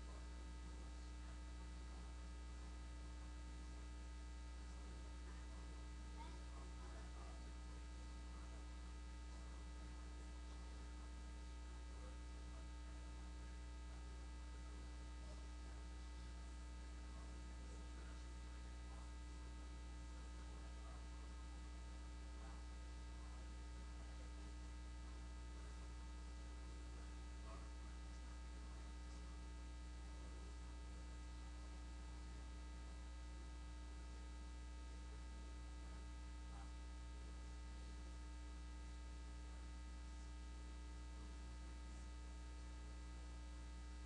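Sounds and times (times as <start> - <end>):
electrical mains hum: 0.0 - 44.0.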